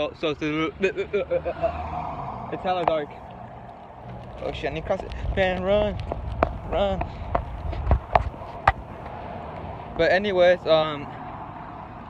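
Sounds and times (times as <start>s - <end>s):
sharp footsteps: 4.0s - 9.2s.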